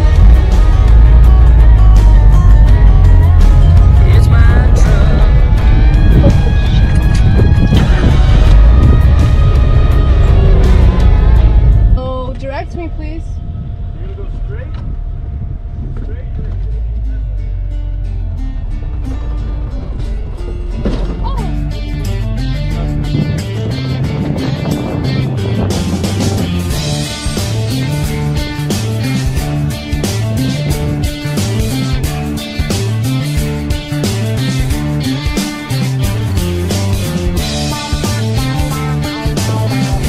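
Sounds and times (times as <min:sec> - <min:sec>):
background music: 0:00.0 - 0:13.4, 0:16.7 - 0:40.0.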